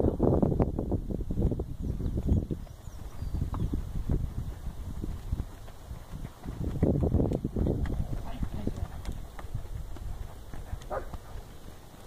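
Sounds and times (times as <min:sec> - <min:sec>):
horse hoofbeats on dirt: 0:00.0 - 0:12.0.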